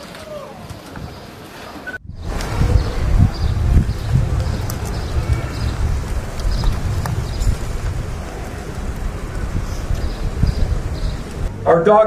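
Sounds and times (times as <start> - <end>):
wind rumbling on microphone: 0.0 - 11.8.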